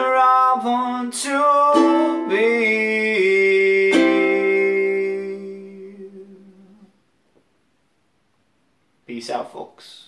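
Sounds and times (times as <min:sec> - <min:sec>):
man humming: 0:00.8 - 0:07.0.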